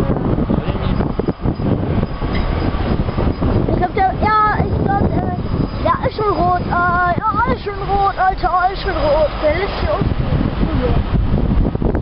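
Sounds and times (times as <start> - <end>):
freight train rumbling: 0.0 - 12.0.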